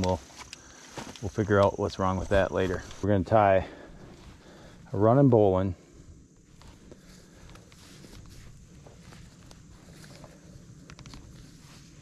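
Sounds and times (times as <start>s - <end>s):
climbing rope rustling and clicking: 0.0s - 1.8s, 6.6s - 12.0s.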